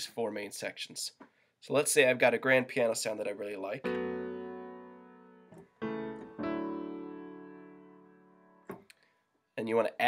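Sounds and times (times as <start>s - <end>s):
piano chords: 3.7s - 8.8s.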